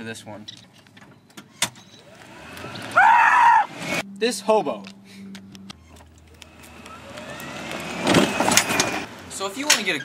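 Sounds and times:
golf cart motor whine: 1.9 - 4.0, 5.9 - 9.2.

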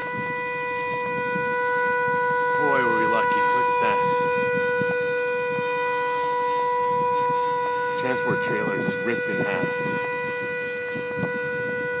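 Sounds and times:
vehicle horn sounding: 0.0 - 12.0.

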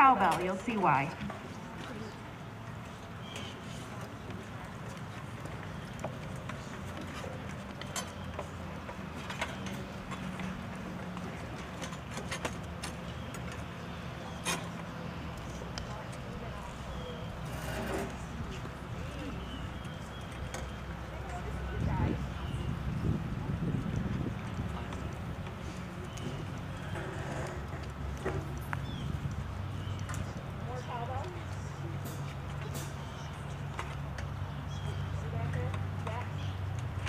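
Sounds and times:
faint voices: 0.0 - 28.6.

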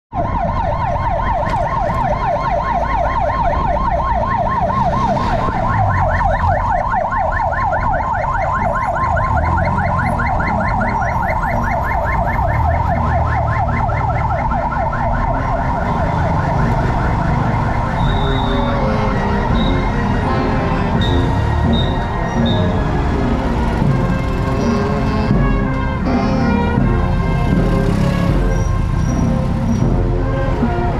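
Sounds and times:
siren yelping: 0.1 - 30.9
street traffic: 0.1 - 30.9.

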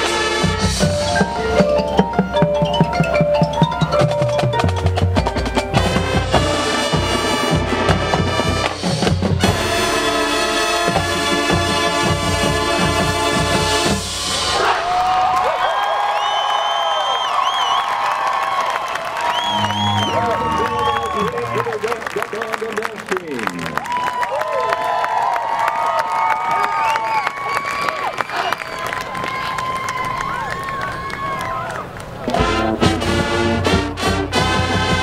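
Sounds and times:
marching band chord: 0.0 - 14.8, 19.4 - 22.2, 32.3 - 35.0
audience cheering and whooping: 14.4 - 32.4
long whistles: 16.0 - 21.6
scattered claps: 17.7 - 32.4.

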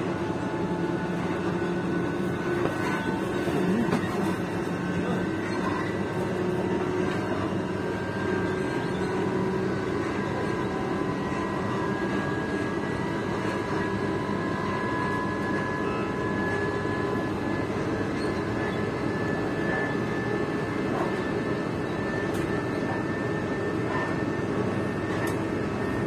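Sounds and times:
electric train running noise: 0.0 - 26.0.

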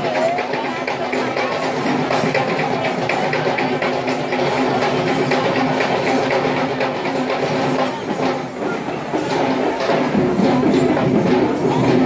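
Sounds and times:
fast rattling drums: 0.0 - 12.0
jingling metal percussion: 0.0 - 12.0.

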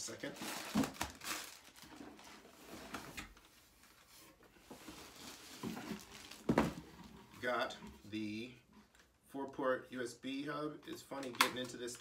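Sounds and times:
plastic packaging crinkling: 0.2 - 2.4, 5.1 - 6.8.

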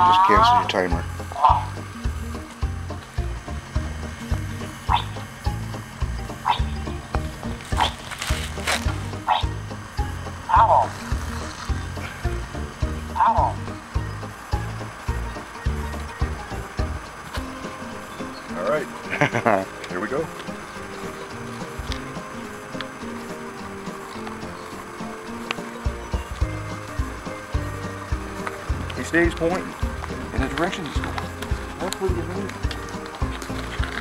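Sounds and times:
music with low beat: 0.0 - 34.0.

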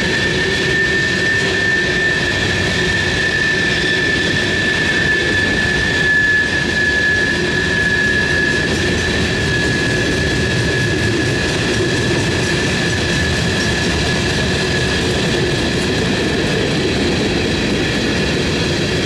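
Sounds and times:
high-pitched wheel squeal: 0.0 - 13.8
train wheels rumbling on track: 0.0 - 19.0.

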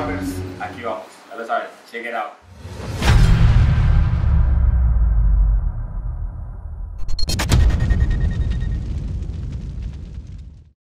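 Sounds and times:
deep rumbling boom: 2.8 - 10.8.

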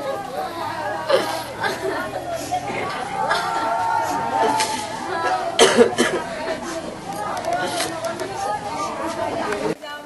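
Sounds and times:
people crying and lamenting: 0.0 - 9.8
low talk: 0.0 - 10.0
sharp cough or sob: 5.6 - 6.3.

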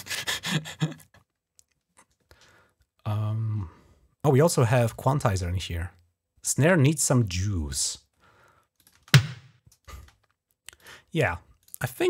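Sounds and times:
snare drum hit with reverb: 9.2 - 9.4.

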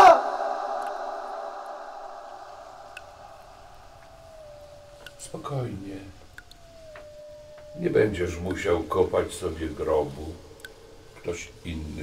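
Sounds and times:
eerie electronic drone: 0.0 - 12.0
thin gliding tone: 0.0 - 12.0.

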